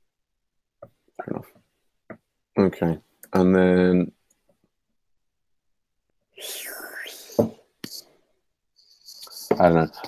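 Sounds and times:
person whispered exhale: 6.4s - 7.5s.

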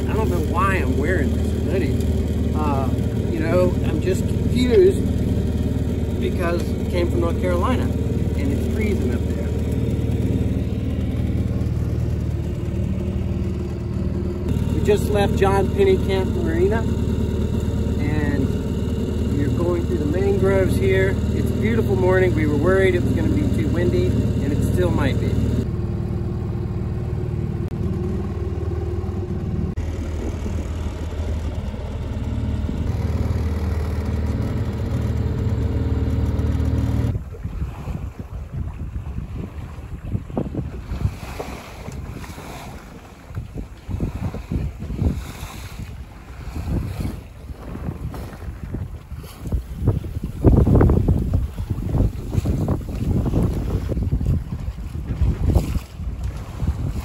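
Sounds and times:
outboard motor running: 0.0s - 57.0s
waves splashing against hull: 0.0s - 57.0s
wind buffeting microphone: 37.0s - 57.0s.

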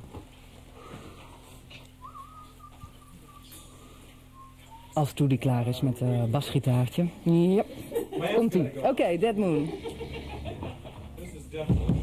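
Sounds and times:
amplifier electrical hum: 0.0s - 12.0s.

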